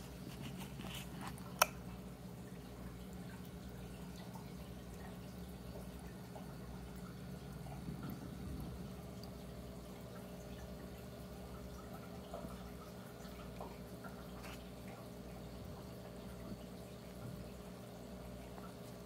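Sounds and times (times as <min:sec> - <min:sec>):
steady low hum: 0:00.0 - 0:19.0
water trickling and dripping: 0:00.0 - 0:19.0.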